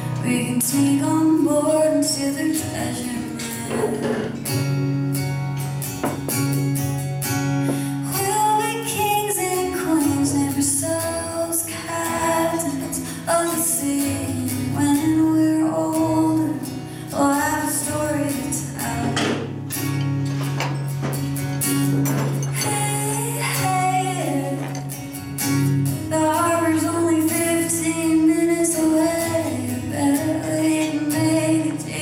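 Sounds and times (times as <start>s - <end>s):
woman singing: 0.0s - 4.5s, 7.7s - 19.6s, 22.5s - 25.1s, 25.9s - 32.0s
strummed guitar: 0.0s - 32.0s.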